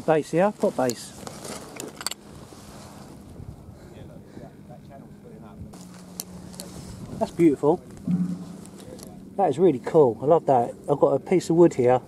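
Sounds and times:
low engine hum: 0:05.6 - 0:09.4.

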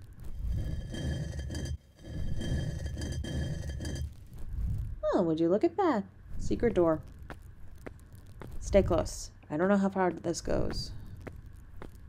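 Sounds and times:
stone door grinding open: 0:00.0 - 0:04.3.

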